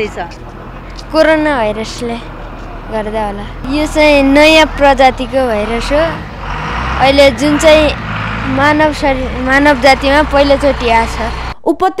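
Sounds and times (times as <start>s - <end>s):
boy speaking: 0.0s - 6.2s, 7.0s - 12.0s
buses and traffic hum: 0.0s - 11.6s.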